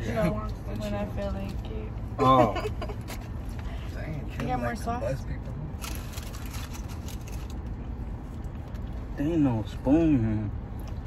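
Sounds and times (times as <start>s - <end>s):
food packaging rustling: 5.8s - 7.7s.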